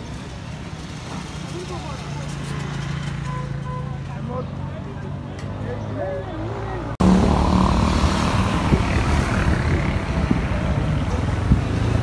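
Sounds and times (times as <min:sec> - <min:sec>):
voices talking: 0:01.4 - 0:07.0
engine hum: 0:06.9 - 0:12.0.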